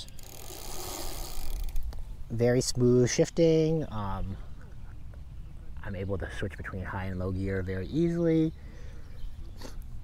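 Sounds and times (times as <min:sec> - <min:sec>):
bicycle chain running through gears: 0:00.0 - 0:01.8.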